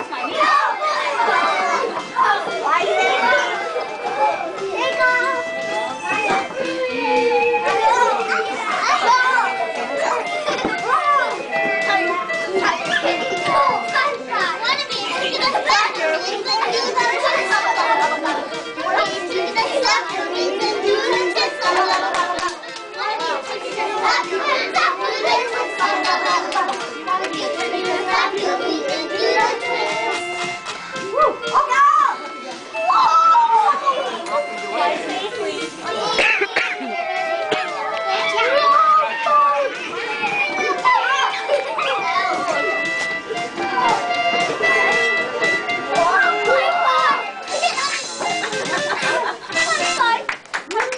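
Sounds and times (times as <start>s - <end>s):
background music: 0.0s - 50.5s
young children chattering: 0.0s - 50.9s.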